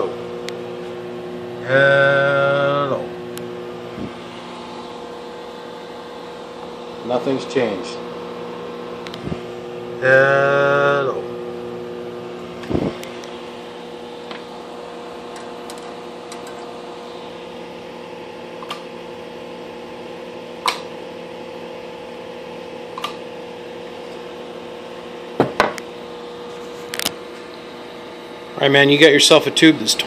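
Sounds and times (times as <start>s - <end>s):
electrical hum: 0.0s - 30.0s
fan noise: 0.0s - 30.0s.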